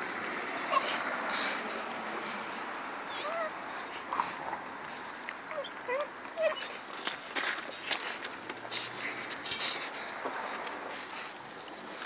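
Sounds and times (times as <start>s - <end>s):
puppies whimpering: 0.6s - 1.5s, 3.0s - 4.4s, 5.5s - 6.9s.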